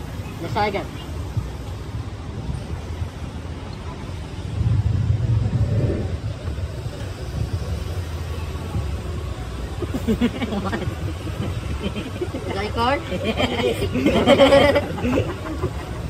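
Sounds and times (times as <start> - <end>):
street traffic rumbling: 0.0 - 16.0.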